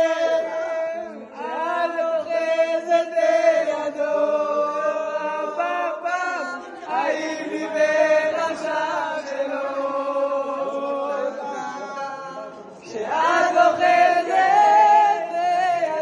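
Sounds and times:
group singing unaccompanied: 0.0 - 16.0.

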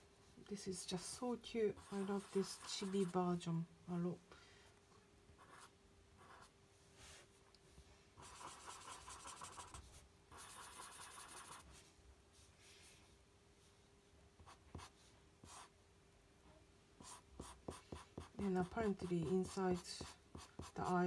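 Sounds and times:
marker scratching on paper: 1.7 - 3.2, 5.4 - 6.5, 8.2 - 11.8, 14.4 - 15.7, 17.0 - 21.0.

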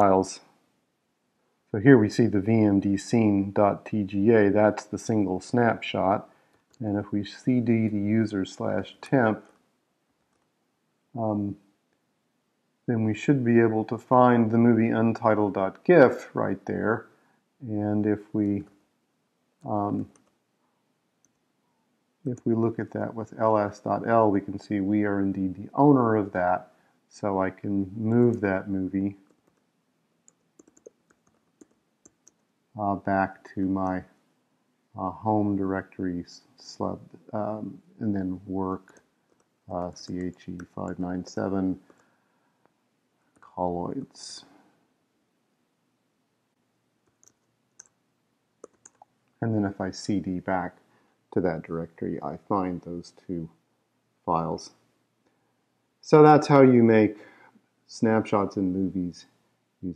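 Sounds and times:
computer keyboard keystrokes: 30.3 - 32.4, 48.6 - 49.1.

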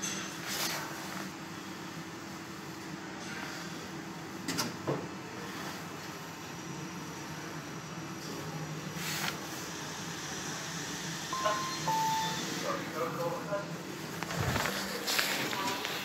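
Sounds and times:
lift running hum: 0.8 - 16.0
two-tone arrival chime: 11.4 - 12.6.

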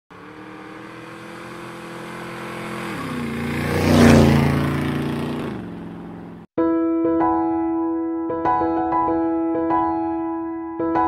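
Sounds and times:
motorcycle passing by: 0.1 - 6.5.

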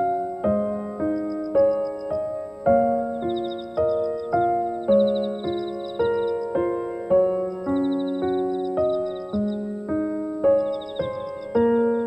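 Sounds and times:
rapid high twittering: 0.0 - 12.0
slow solo piano music: 0.0 - 12.0.

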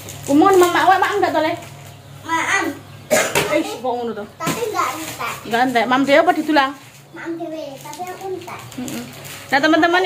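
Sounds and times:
voices talking: 0.3 - 10.0
child's voice: 2.2 - 2.8, 4.4 - 5.4, 7.1 - 9.1.

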